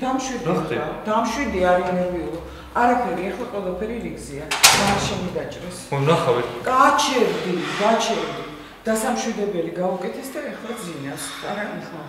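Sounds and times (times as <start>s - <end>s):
dialogue: 0.0s - 12.0s.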